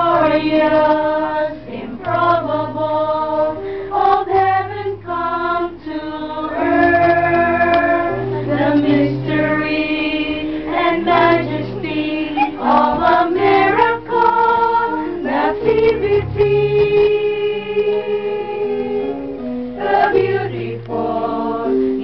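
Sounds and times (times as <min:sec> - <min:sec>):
choir singing in harmony: 0:00.0 - 0:22.0.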